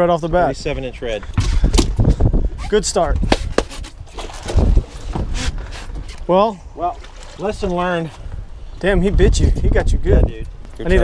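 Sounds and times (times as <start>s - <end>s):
wind rumbling on microphone: 0.2s - 11.0s.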